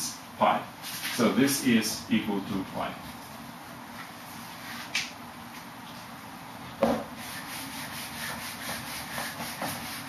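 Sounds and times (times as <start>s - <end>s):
knock: 6.8s - 7.1s
eraser rubbing whiteboard: 7.2s - 10.0s.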